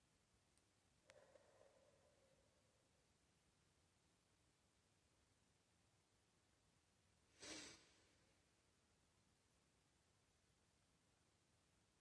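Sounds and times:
breath through the nose: 0:07.4 - 0:08.0.

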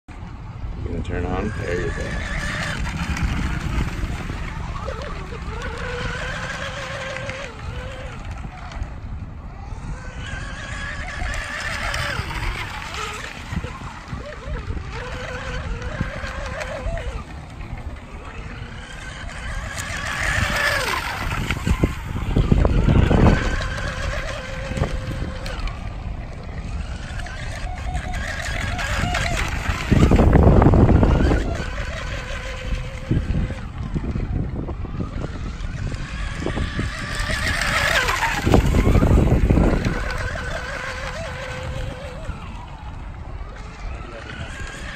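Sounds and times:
electric motor high whine: 0:00.1 - 0:44.9.

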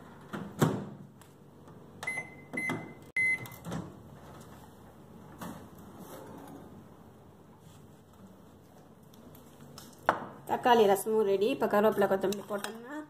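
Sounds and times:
microwave beeps: 0:02.0 - 0:03.6.

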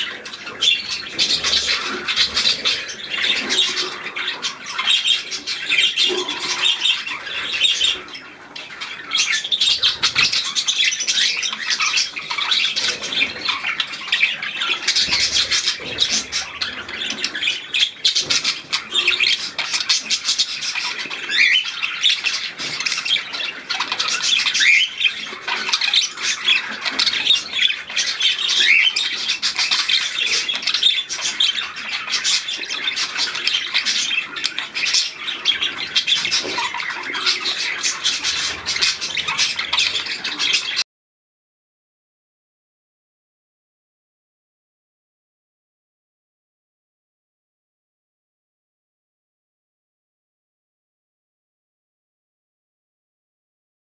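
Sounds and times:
birds chattering and chirping: 0:00.0 - 0:40.8.

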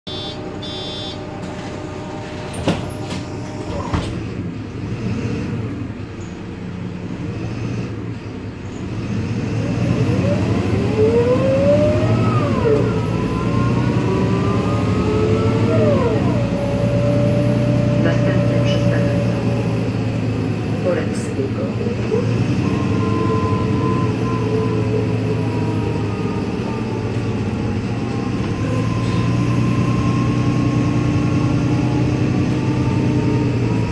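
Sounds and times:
bus engine drone: 0:00.0 - 0:33.9.

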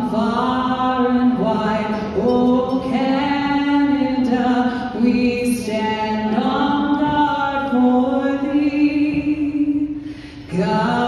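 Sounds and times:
woman singing anthem into microphone: 0:00.0 - 0:11.0.

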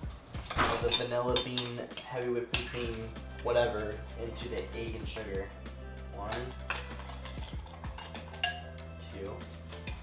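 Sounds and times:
soft background music: 0:00.0 - 0:10.0
metal spoon clinking against saucepan: 0:00.8 - 0:03.0, 0:06.3 - 0:08.8.

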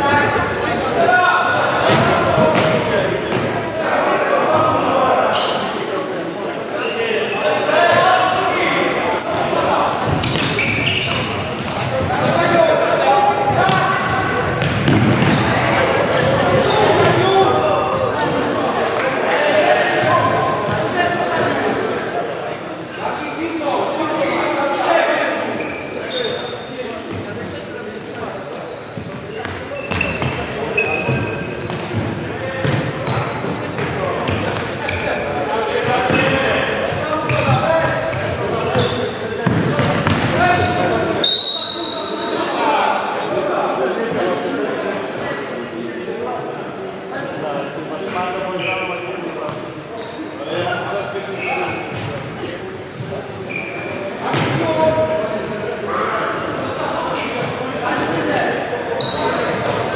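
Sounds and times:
shoes squeaking on court: 0:00.0 - 0:01.1, 0:09.1 - 0:12.8, 0:13.4 - 0:18.6, 0:20.1 - 0:42.4, 0:47.8 - 0:58.2, 0:59.0 - 0:59.9
players calling out: 0:00.0 - 0:43.4.

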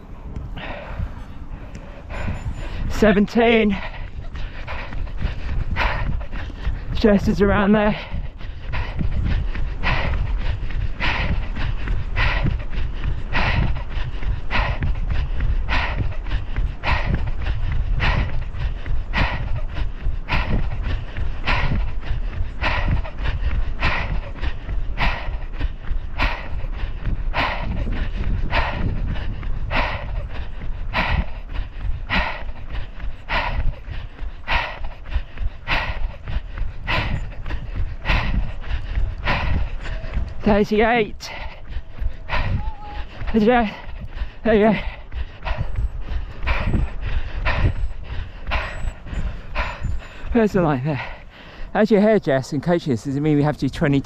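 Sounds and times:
person running: 0:00.0 - 0:54.0
low rumble: 0:08.0 - 0:40.5.

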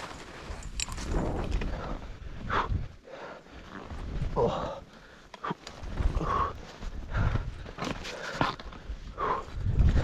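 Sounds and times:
wind rumble on microphone: 0:00.5 - 0:03.0, 0:08.8 - 0:10.0
hard breathing: 0:01.6 - 0:10.0.

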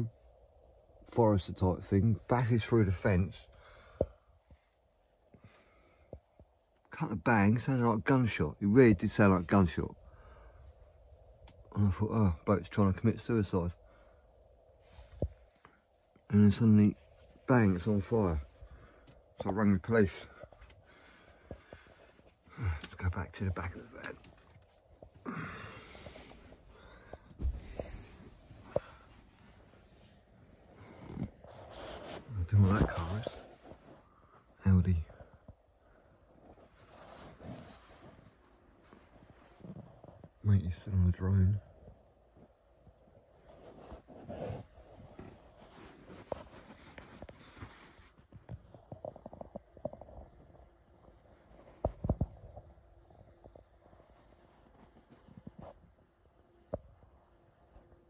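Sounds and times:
faint breathing: 0:03.4 - 0:06.6, 0:10.0 - 0:11.4, 0:13.8 - 0:16.2, 0:18.3 - 0:19.4, 0:20.2 - 0:32.5.

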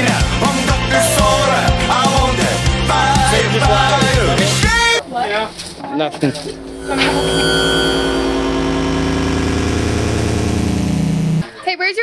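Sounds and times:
electronic warning buzzing drone: 0:06.2 - 0:11.4.

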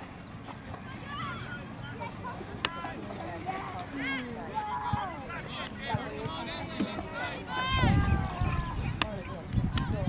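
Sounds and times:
people shouting on a field: 0:03.9 - 0:10.0
wind on microphone: 0:07.6 - 0:10.0.

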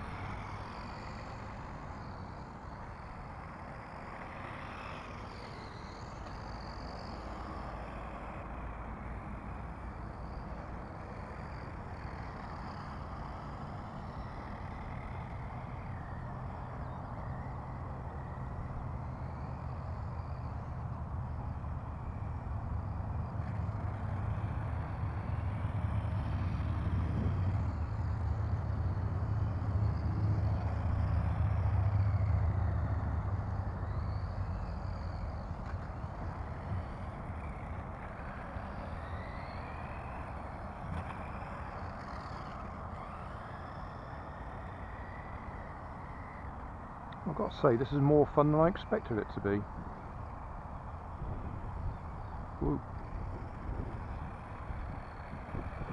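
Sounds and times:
radio-controlled car motor whining: 0:33.8 - 0:47.2.

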